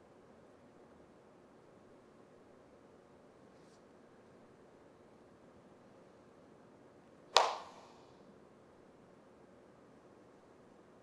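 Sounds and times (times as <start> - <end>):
hand slap: 7.4 - 8.0.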